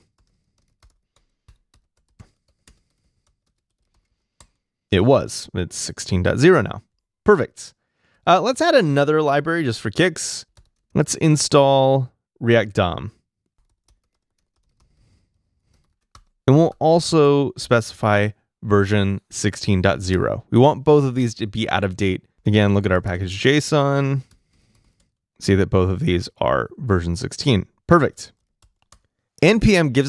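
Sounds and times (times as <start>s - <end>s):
faint keyboard typing: 0.0s - 4.8s, 10.4s - 11.1s, 13.1s - 16.9s, 24.2s - 25.2s, 27.8s - 29.5s.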